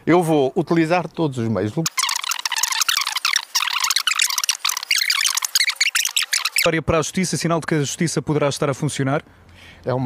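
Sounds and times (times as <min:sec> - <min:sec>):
high-pitched squeaky chatter: 0:01.9 - 0:06.7.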